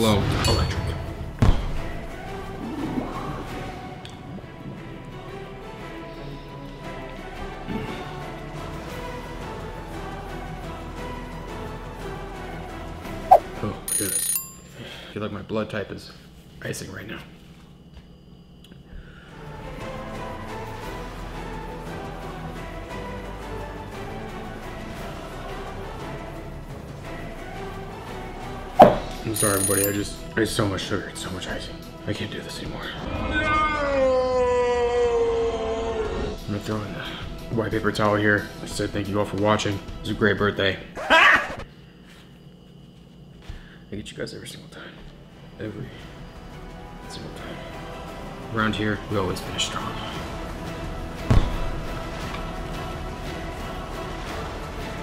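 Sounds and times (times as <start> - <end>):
bell-like ring: 13.9 - 14.8, 29.4 - 30.1
man screaming hey: 33.2 - 36.0.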